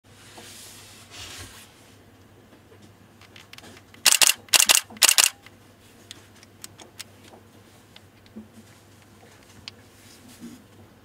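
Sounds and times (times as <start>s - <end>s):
camera handling clicks: 3.3s - 5.4s
camera shutter clacks: 4.0s - 5.4s.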